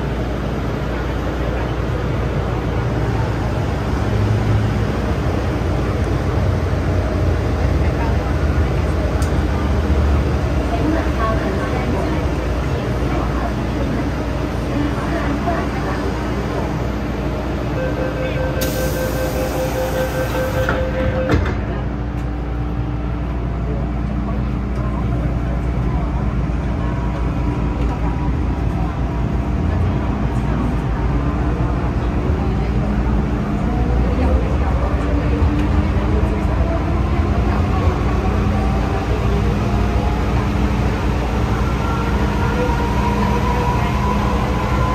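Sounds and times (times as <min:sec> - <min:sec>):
two-tone door warning: 0:17.8 - 0:21.7
train doors thudding shut: 0:18.6 - 0:21.8.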